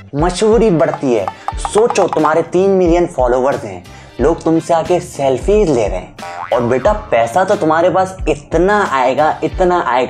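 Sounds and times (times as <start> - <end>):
background music: 0.0 - 10.0
man speaking animatedly: 0.2 - 5.9.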